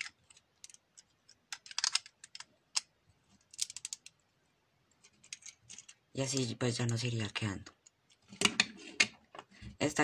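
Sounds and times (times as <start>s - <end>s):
plastic bricks clicking: 0.0s - 2.9s, 3.5s - 4.1s.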